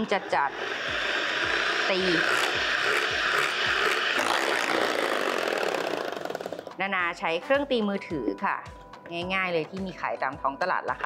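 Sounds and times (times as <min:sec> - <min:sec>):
electric mixer whirring: 0:00.0 - 0:06.8.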